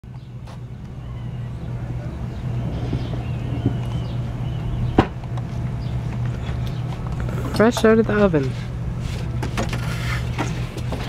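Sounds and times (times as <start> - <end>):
steam venting with low hum: 0.1 - 11.0.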